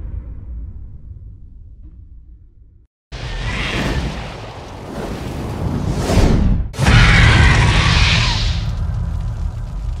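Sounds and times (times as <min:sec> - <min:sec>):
low rumble: 0:07.6 - 0:10.0.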